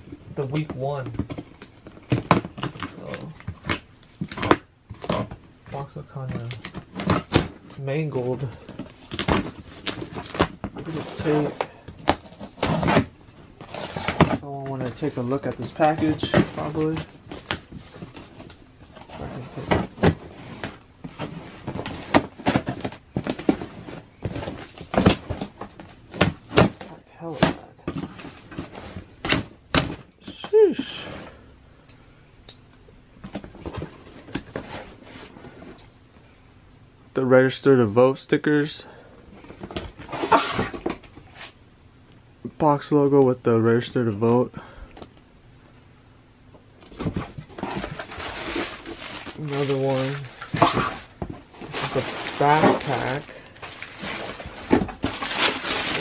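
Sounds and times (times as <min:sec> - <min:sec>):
cardboard and tape crinkles and knocks: 0:00.4 - 0:30.4, 0:46.8 - 0:56.0.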